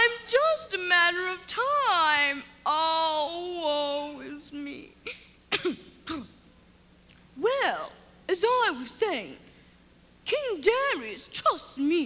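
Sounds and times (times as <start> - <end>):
child's sing-song voice: 0.0 - 4.9.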